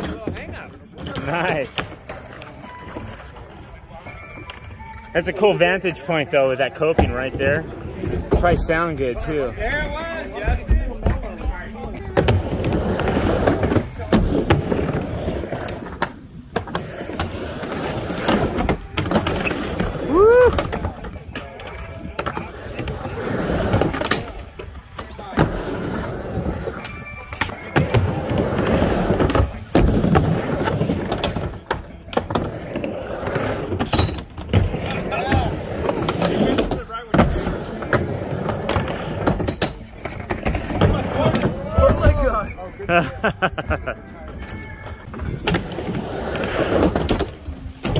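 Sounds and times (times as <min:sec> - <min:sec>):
skateboard wheels rumbling: 0:00.0 - 0:47.9.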